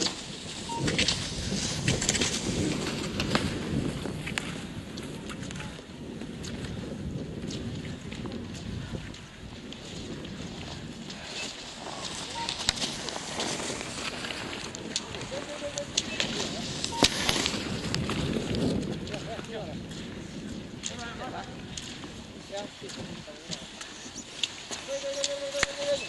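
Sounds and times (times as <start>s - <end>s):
skis scraping on snow: 0.0s - 5.5s, 10.9s - 19.4s.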